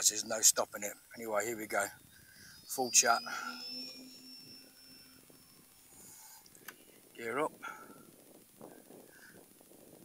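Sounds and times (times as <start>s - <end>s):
high whine of electric motors: 0.0s - 10.0s.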